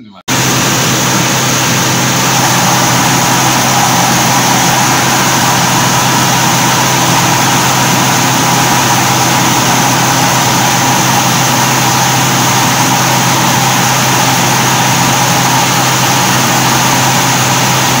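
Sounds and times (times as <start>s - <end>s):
rice mill mechanical drone: 0.3s - 18.0s
rice streaming into a bucket: 0.3s - 18.0s.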